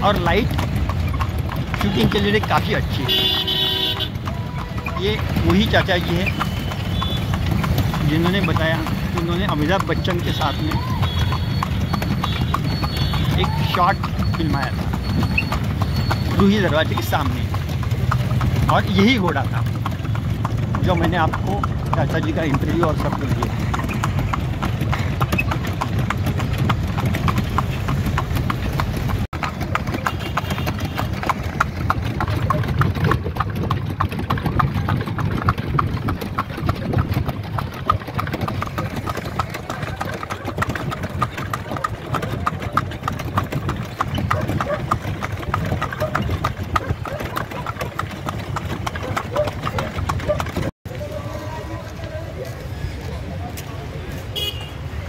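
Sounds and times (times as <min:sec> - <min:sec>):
horse hooves clip-clopping on pavement: 0:00.0 - 0:55.0
traffic: 0:00.0 - 0:55.0.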